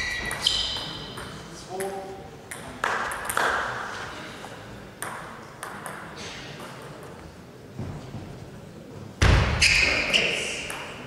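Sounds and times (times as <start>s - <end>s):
table tennis ball bouncing: 0.0s - 3.8s, 5.0s - 7.3s, 10.6s - 11.0s.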